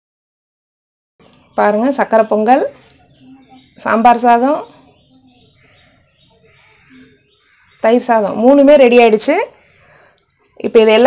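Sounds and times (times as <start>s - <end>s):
bird chirp: 1.2s - 11.0s.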